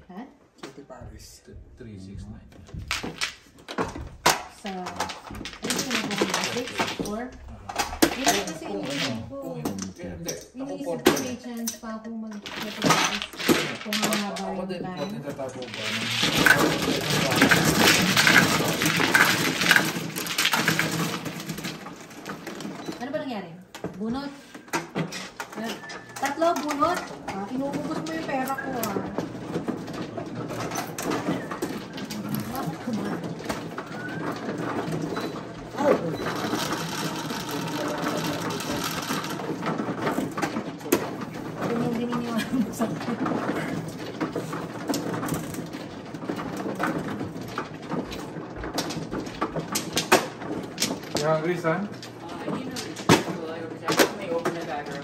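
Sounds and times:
mahjong tiles clattering: 2.7 - 55.0
table motor running: 30.4 - 40.4.

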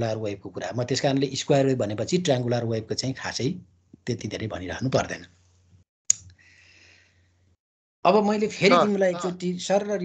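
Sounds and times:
person speaking: 8.1 - 10.0.

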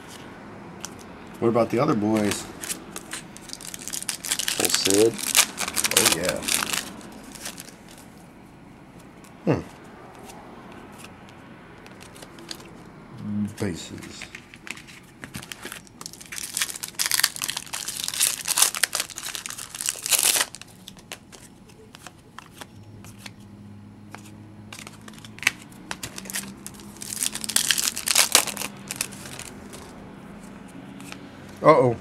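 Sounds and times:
foil wrappers crinkling and tearing: 2.2 - 8.0, 14.2 - 22.6, 24.7 - 29.9.

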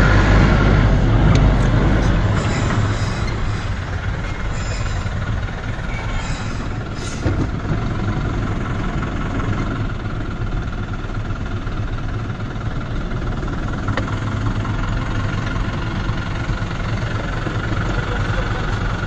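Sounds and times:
vehicle engines idling: 0.0 - 19.0.

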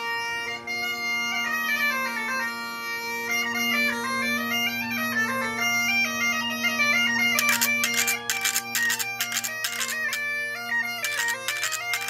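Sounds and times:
bagpipe playing lively tune: 0.0 - 12.0
scallop shells rubbed and struck: 7.4 - 10.2, 11.0 - 12.0.

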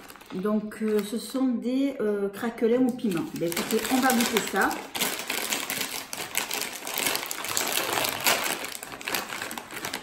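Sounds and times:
plastic snack bag crinkling: 0.0 - 1.6, 2.6 - 10.0.

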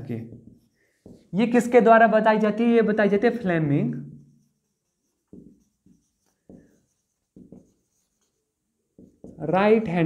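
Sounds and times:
marker writing on a whiteboard: 0.0 - 1.8, 3.2 - 10.0.

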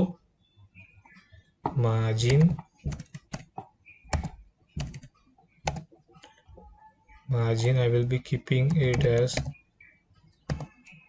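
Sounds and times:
keyboard keystrokes: 2.3 - 5.8.

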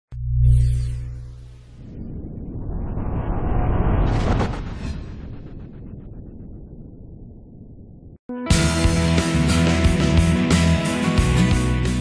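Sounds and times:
deep rumbling riser swell: 1.0 - 8.2.

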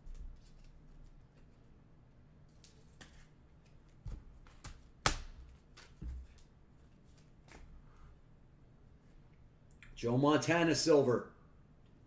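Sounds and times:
cards and plastic holder handled: 0.2 - 1.6.

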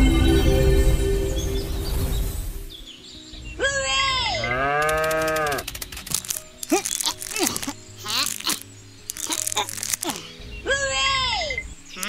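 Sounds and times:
music: 0.0 - 12.0
cow mooing: 4.4 - 5.6.

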